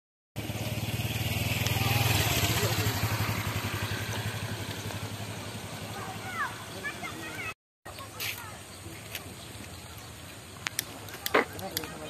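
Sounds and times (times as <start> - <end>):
motorcycle engine running: 0.4 - 7.5.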